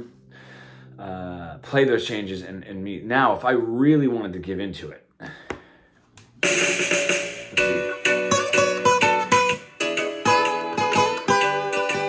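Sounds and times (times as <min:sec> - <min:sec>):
acoustic guitar: 0:06.4 - 0:12.0.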